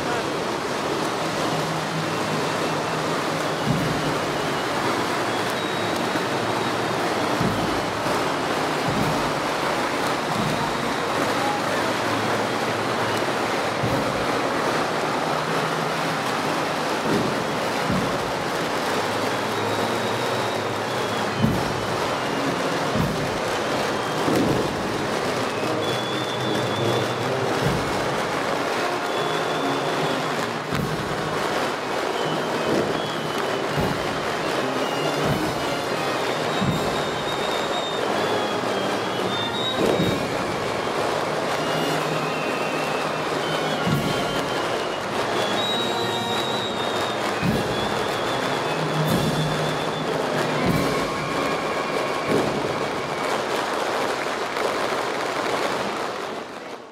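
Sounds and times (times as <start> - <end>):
procession band playing: 0.0 - 56.3
crowd and street noise: 0.0 - 56.9
sharp knocks: 7.4 - 9.6.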